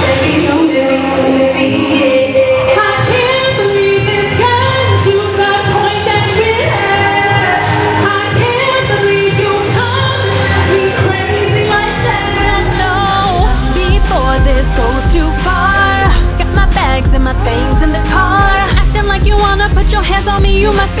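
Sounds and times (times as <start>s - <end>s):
backing music: 0.0s - 21.0s
woman singing into microphone: 0.0s - 21.0s.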